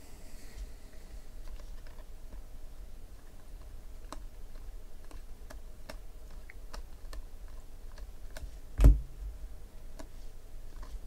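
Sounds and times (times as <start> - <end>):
loud thump: 8.8 - 9.1.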